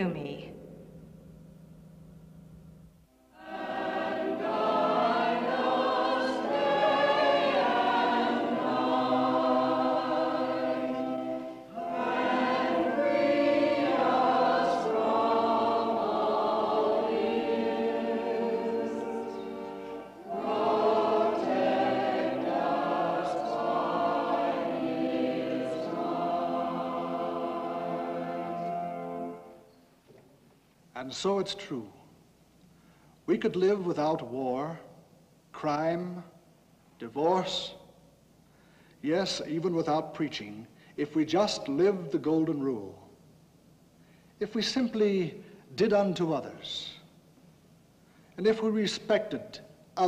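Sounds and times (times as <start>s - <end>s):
congregation singing a hymn: 3.4s - 29.7s.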